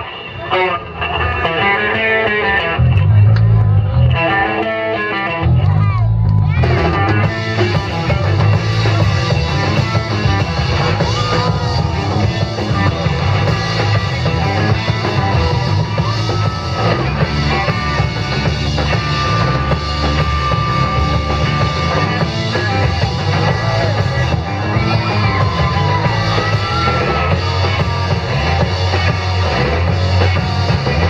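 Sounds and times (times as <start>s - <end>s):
rock band playing loud: 0.0s - 31.0s.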